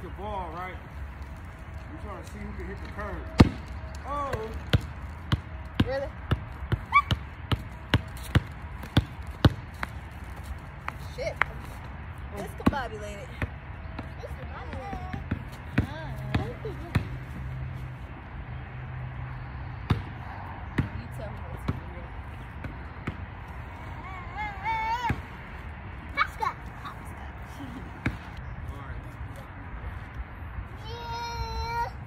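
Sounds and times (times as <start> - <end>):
basketball bouncing on concrete: 2.8 - 11.8, 12.4 - 17.4, 19.8 - 23.4.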